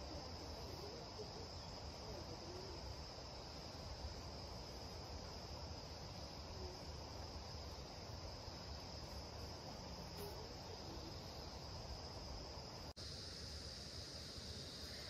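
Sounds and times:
insects chirring: 0:00.0 - 0:15.0.

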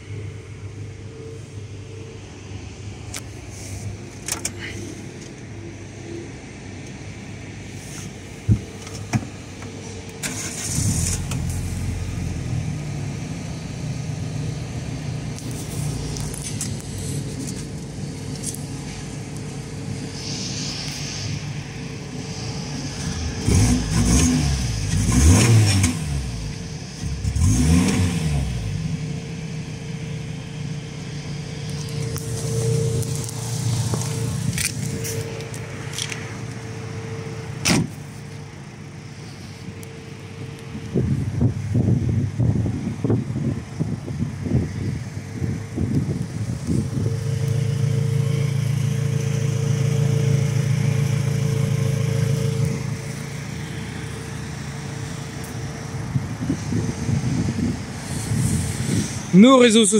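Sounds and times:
car engine starting and idling: 0:00.0 - 0:59.9
engine revving: 0:10.2 - 0:13.8, 0:20.1 - 0:36.2, 0:46.6 - 0:59.3.

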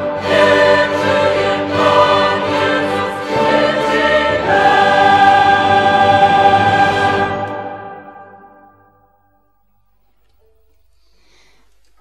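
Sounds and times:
string orchestra: 0:00.0 - 0:08.3
choir singing: 0:00.0 - 0:09.2.

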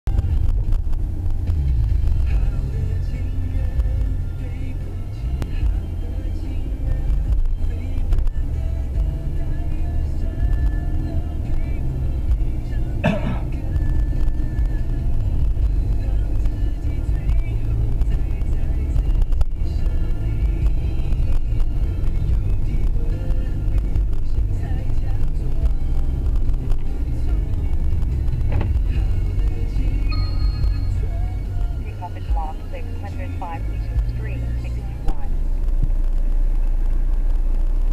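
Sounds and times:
car engine and road rumble: 0:00.0 - 0:37.9
car radio music and talk: 0:00.1 - 0:37.9.

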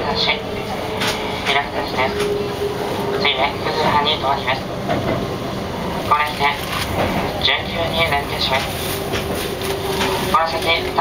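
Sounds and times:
conductor announcement: 0:00.0 - 0:11.0
train rumbling into station: 0:00.0 - 0:11.0.

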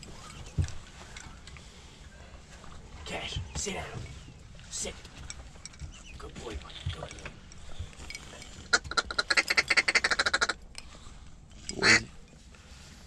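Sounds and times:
duck call quacks: 0:08.7 - 0:10.6, 0:11.8 - 0:12.1.

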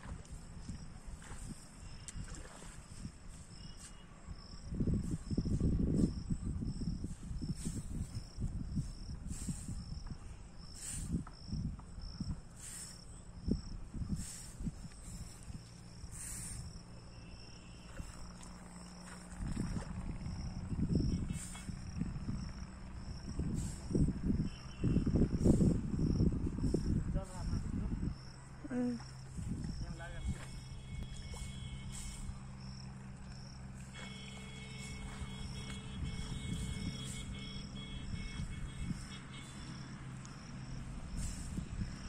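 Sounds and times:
wind rumble on microphone: 0:00.0 - 0:42.0
insects chirping in trills: 0:00.1 - 0:42.0
low rustling rumble: 0:18.1 - 0:28.6.

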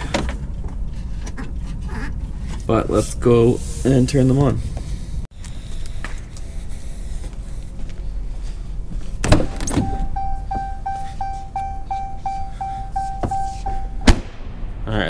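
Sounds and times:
door open warning chime: 0:09.5 - 0:14.1.

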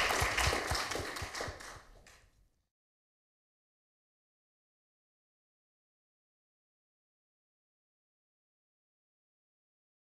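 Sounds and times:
audience applause: 0:00.0 - 0:02.2.

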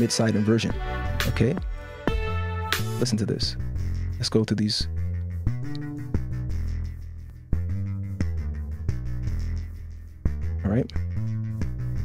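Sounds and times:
deep bass notes: 0:00.7 - 0:12.0.

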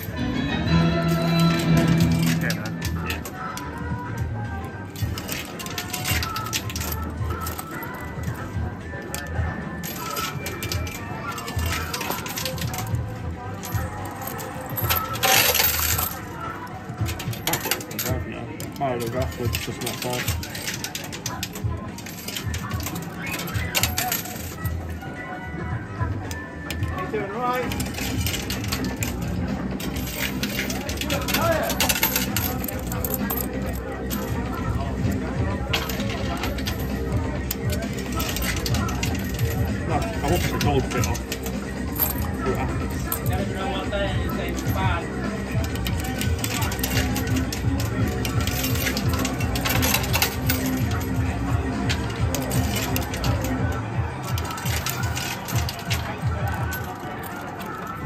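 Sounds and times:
coins clinking in coin pusher: 0:00.0 - 0:03.9, 0:04.7 - 0:25.0, 0:26.3 - 0:58.0
arcade background music: 0:00.0 - 0:58.0.

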